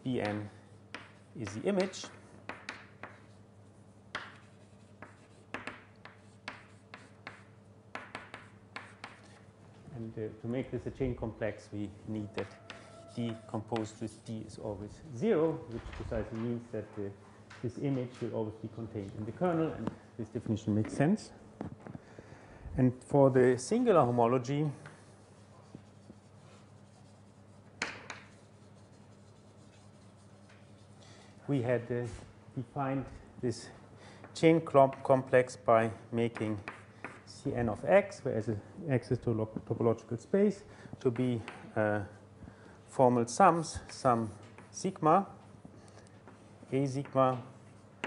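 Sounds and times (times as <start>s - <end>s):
chalk tapping and scratching: 0.1s - 3.4s, 4.1s - 9.5s, 12.3s - 14.5s, 24.8s - 31.2s, 36.3s - 37.5s, 44.2s - 45.0s
writing on a board: 0.2s - 3.4s, 4.1s - 9.5s, 12.3s - 14.4s, 24.8s - 31.0s, 36.3s - 37.5s, 44.4s - 44.8s.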